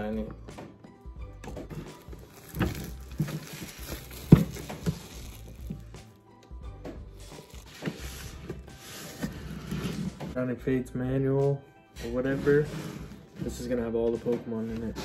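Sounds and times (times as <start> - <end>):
background music: 0.0 - 15.0
shrink wrap crinkling and tearing: 1.9 - 5.9.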